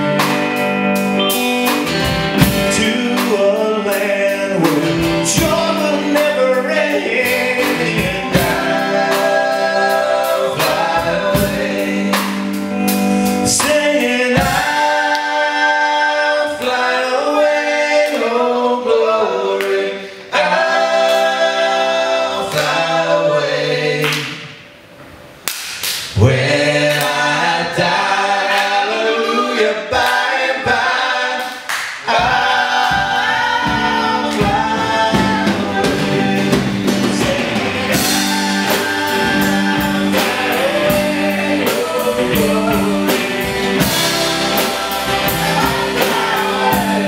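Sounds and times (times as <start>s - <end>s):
bass and band playing: 0.0s - 18.2s, 32.0s - 47.0s
men singing a cappella harmony: 2.5s - 24.4s, 26.2s - 47.0s.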